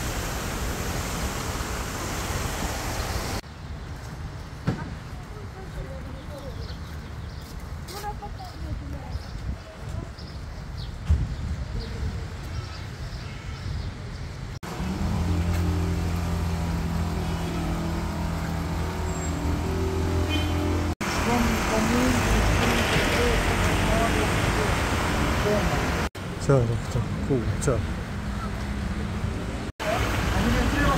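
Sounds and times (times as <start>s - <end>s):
traffic noise: 0.0s - 30.9s
people talking: 7.9s - 10.3s, 21.2s - 27.8s, 29.8s - 30.9s
engine running: 14.6s - 26.1s.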